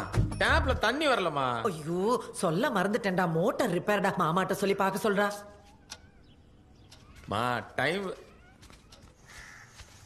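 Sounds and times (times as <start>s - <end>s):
crow cawing faintly: 5.5s - 10.0s.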